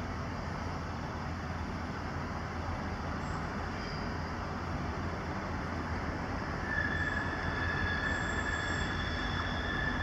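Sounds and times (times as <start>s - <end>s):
diesel train rumble: 0.0s - 10.0s
wheel flanges squealing: 6.6s - 10.0s.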